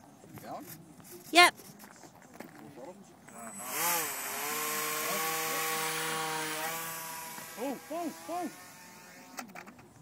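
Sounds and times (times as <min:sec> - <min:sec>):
model plane motor whine: 0:03.5 - 0:09.5.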